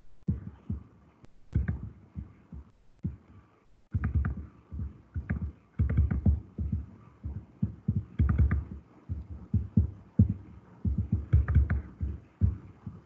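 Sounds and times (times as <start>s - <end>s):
dull low thumps: 0.0s - 13.0s.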